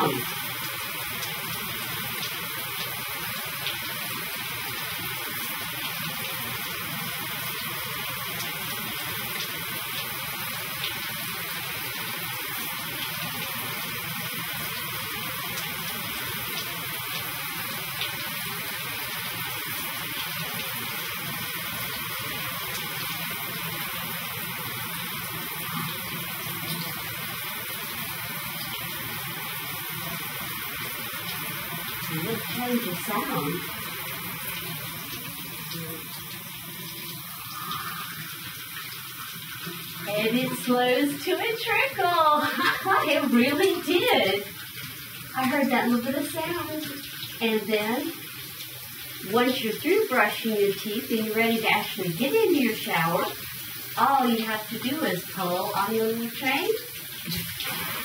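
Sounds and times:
shower water running: 0:00.0 - 0:58.0.

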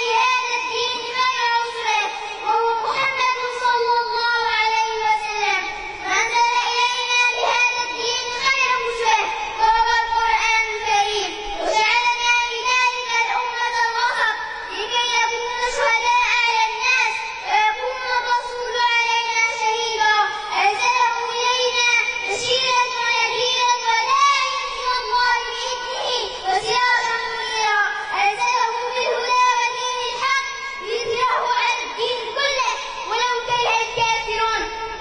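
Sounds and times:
girl chanting melodically: 0:00.0 - 0:35.0.

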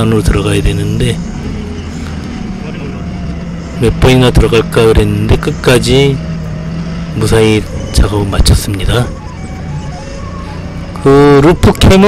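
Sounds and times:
forklift engine humming: 0:00.0 - 0:12.0.

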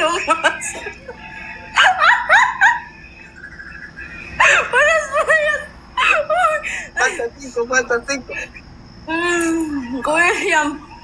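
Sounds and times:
woman giggling in squeals: 0:00.0 - 0:03.0, 0:04.3 - 0:07.2.

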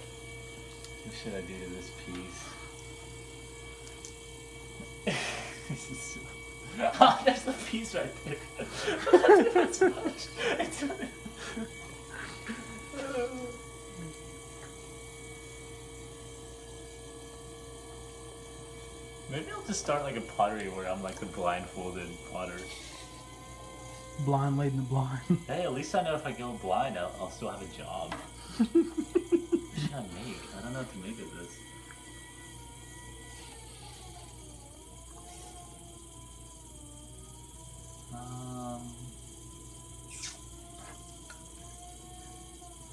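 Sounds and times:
pottery wheel motor humming: 0:00.0 - 0:42.9
thin whine: 0:00.0 - 0:42.9
person laughing: 0:05.0 - 0:07.6, 0:08.2 - 0:14.2, 0:28.4 - 0:30.6.

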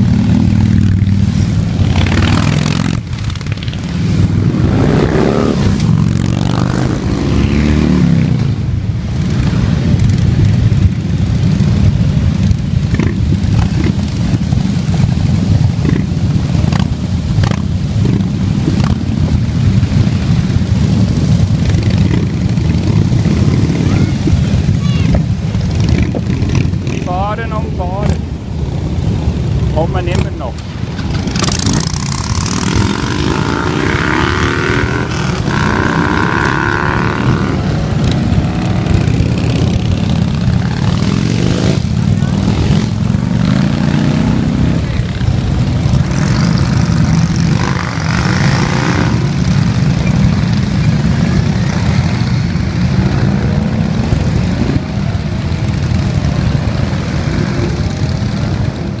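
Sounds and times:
motorcycles riding past revving: 0:00.0 - 0:59.0.

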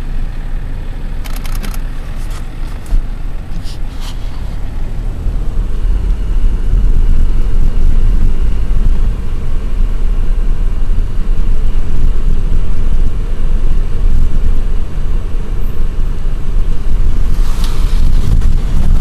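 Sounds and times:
car road noise: 0:00.0 - 0:19.0
wind buffeting microphone: 0:02.8 - 0:19.0.

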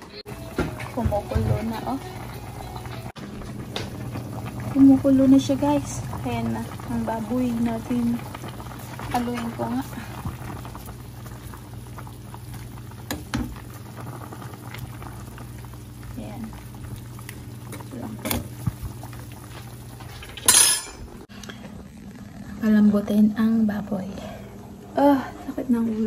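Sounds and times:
water boiling in saucepan: 0:00.3 - 0:26.0
steady low hum: 0:01.1 - 0:26.0.

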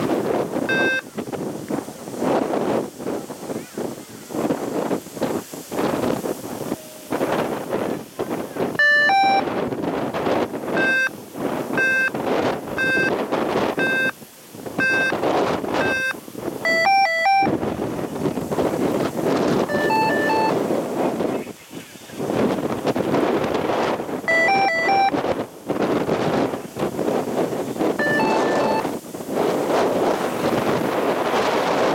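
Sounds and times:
wind buffeting microphone: 0:00.0 - 0:31.9
electronic timing beeps: 0:00.7 - 0:01.1, 0:08.8 - 0:09.5, 0:10.8 - 0:11.2, 0:11.8 - 0:12.2, 0:12.8 - 0:13.2, 0:13.8 - 0:14.2, 0:14.8 - 0:15.2, 0:15.8 - 0:17.5, 0:19.7 - 0:20.6, 0:24.3 - 0:25.2, 0:28.0 - 0:28.9.

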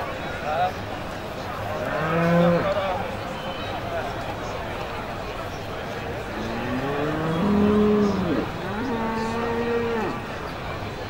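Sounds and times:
cattle mooing: 0:06.4 - 0:10.2.

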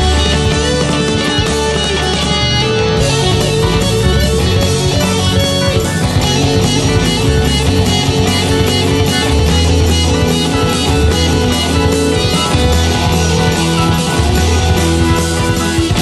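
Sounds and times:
instrumental rock band: 0:00.0 - 0:16.0.

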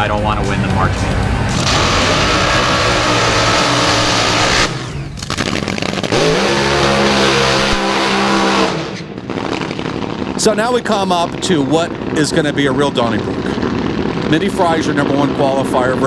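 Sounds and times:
dragster engines revving: 0:00.0 - 0:16.0.

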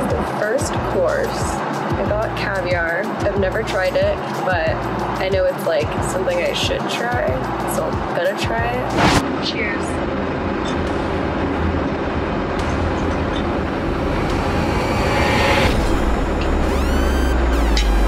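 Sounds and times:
deep bass drone: 0:00.0 - 0:18.0
loud steady rumbling: 0:00.0 - 0:18.0
rising sweeping tones: 0:10.1 - 0:18.0.

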